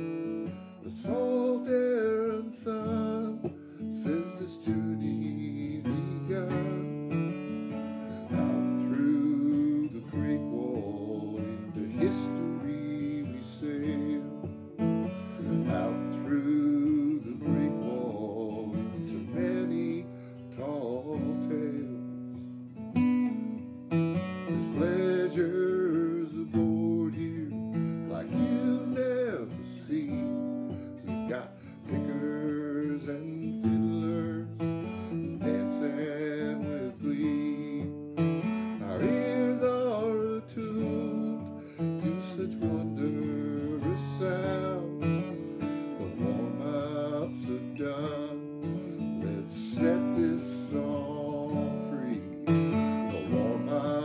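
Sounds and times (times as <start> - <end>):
acoustic guitar strummed: 0.0 - 54.0
man singing: 0.0 - 54.0.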